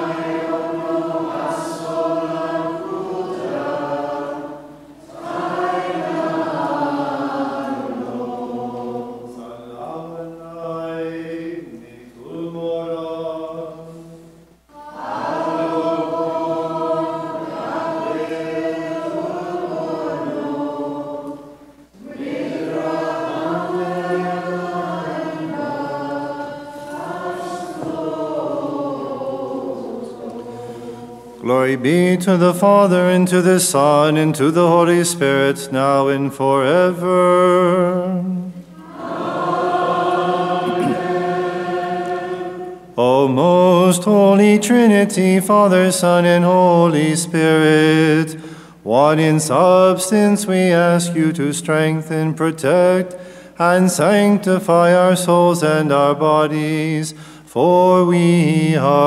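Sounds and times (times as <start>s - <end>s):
liturgical chant: 0.0s - 59.0s.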